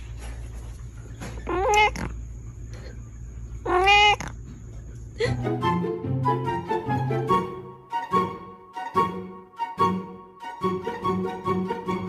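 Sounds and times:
steady low hum: 0.0s - 7.7s
cat meowing: 1.5s - 2.0s, 3.6s - 4.3s.

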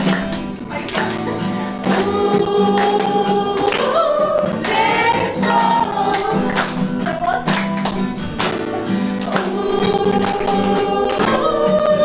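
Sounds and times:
group singing children's song: 0.0s - 12.0s.

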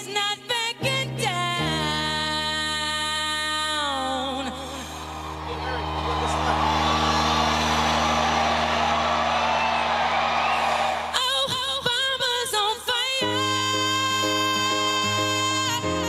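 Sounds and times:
woman singing: 0.0s - 4.9s, 11.1s - 16.0s
crowd cheering: 4.8s - 11.8s
piano chord: 5.4s - 11.0s.

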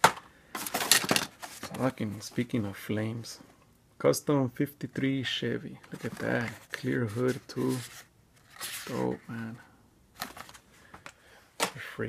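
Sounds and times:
card rustling: 0.0s - 2.6s, 5.8s - 9.6s, 10.2s - 11.8s.

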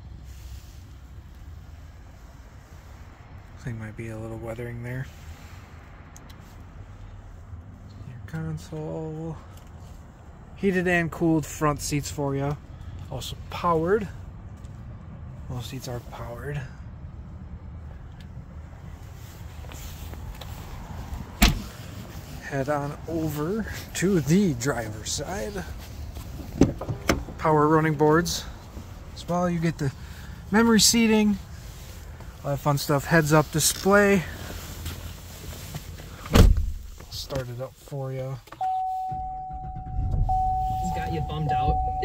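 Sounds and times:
dull thump: 36.3s - 36.9s
low steady rumble: 38.6s - 42.0s.

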